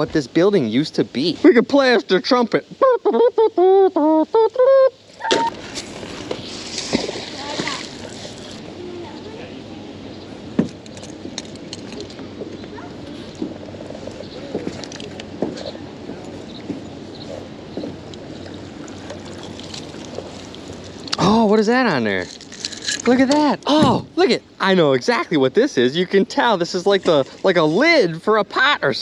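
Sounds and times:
water splashing and dripping: 5.3 - 8.6, 18.4 - 21.2.

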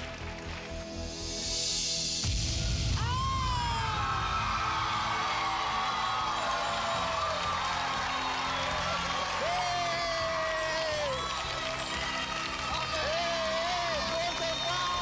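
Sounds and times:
backing music: 0.0 - 15.0.

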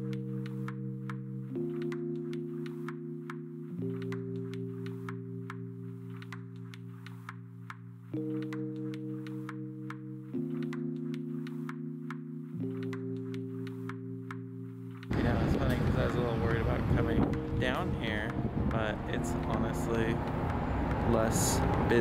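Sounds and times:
light ticking beat: 0.0 - 22.0
soft synth chords: 0.0 - 22.0.

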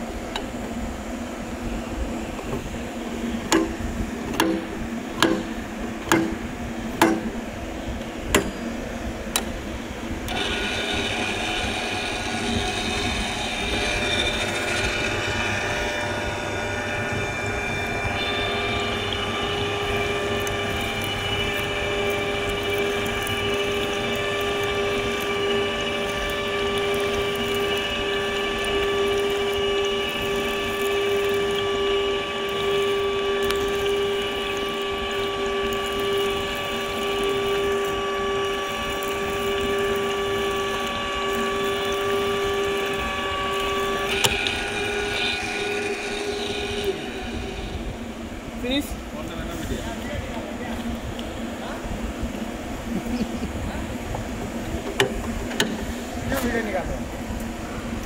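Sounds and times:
pipe threading machine humming: 0.0 - 58.0
sharp knocks: 3.5 - 6.4, 7.0 - 7.4.

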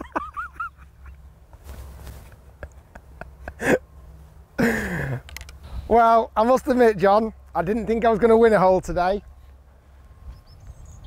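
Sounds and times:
man laughing: 0.0 - 1.2, 2.4 - 3.9, 4.6 - 5.3
low steady rumble: 0.0 - 11.0.

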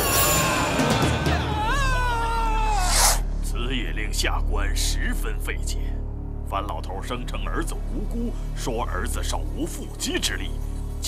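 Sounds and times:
dramatic music: 0.0 - 11.0
man wailing cry: 0.2 - 3.1.

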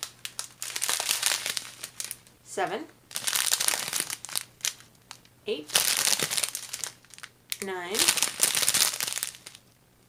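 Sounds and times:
plastic bags crinkling: 0.0 - 2.3, 3.1 - 9.8.

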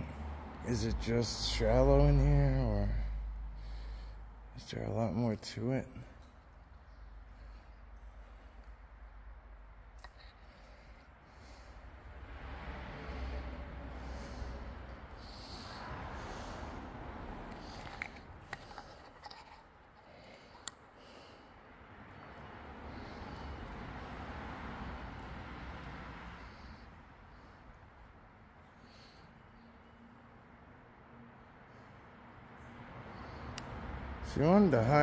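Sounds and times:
distant road traffic: 0.0 - 35.0.

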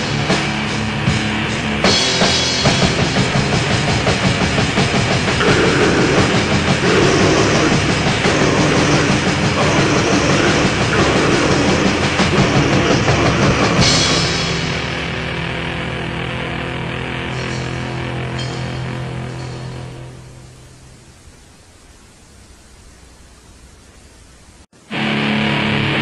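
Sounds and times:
rapid clattering drums: 0.0 - 15.2
metal band playing: 0.0 - 20.8
sustained guitar notes: 0.0 - 21.2, 24.8 - 26.0.

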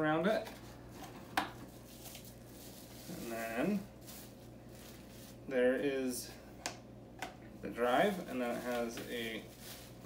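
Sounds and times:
bubble-wrapped package handled: 0.5 - 5.5, 7.9 - 10.0.

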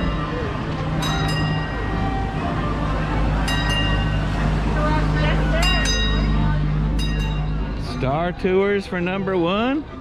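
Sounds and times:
bus engine humming: 0.0 - 10.0.

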